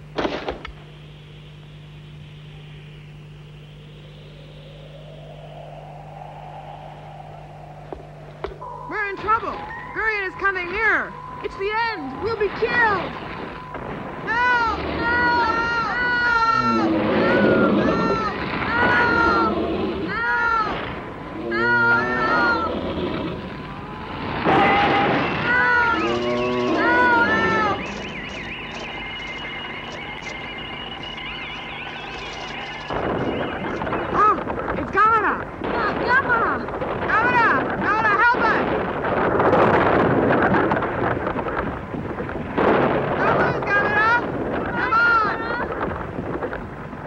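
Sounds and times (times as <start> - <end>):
steady held tones: 0.7 - 19.1, 23.3 - 34.6
monster screeching calls: 24.4 - 27.9.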